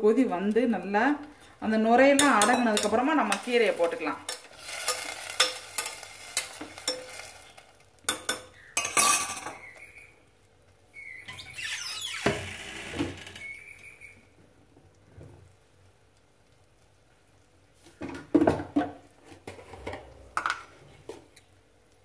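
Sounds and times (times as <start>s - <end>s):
metal spoon stirring in a pan: 2.0s - 9.6s
spoon knocking against pan: 2.2s - 4.4s.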